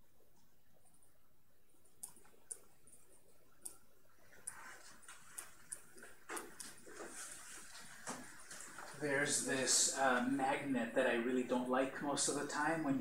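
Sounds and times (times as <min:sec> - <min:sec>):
soft rustling: 0:00.1 - 0:10.7
stylus clicks and taps: 0:01.8 - 0:07.0.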